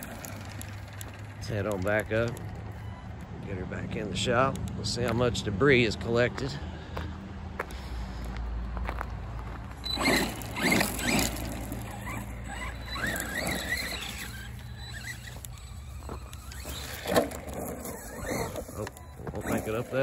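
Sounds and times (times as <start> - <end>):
tyres crunching over gravel: 0.0 - 2.8, 3.4 - 20.0
electric motor whining: 0.0 - 3.0, 9.8 - 20.0.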